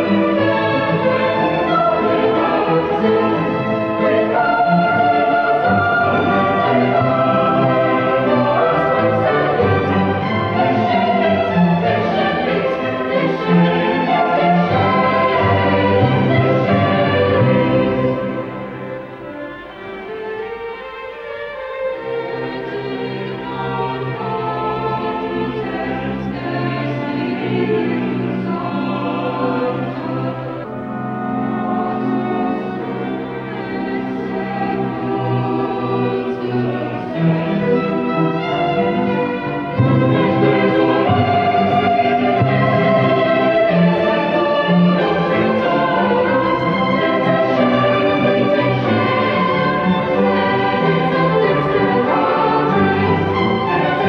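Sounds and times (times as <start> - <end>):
choir singing sustained chords: 0.0 - 54.0
orchestral accompaniment: 0.0 - 54.0.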